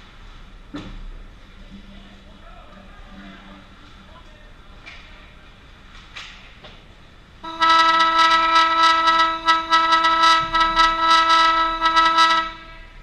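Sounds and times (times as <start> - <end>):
ice rink horn long blast: 7.4 - 13.0.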